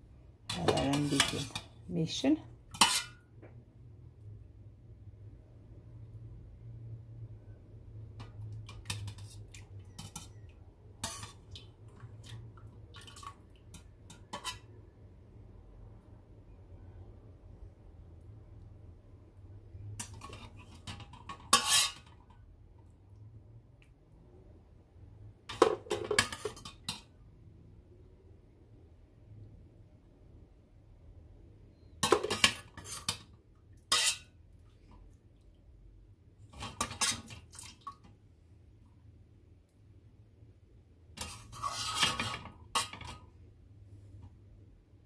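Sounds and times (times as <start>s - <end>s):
metal pan clattering: 0.5s - 1.7s, 2.7s - 3.2s, 25.5s - 27.0s, 32.0s - 33.2s, 36.6s - 37.4s, 41.2s - 43.2s.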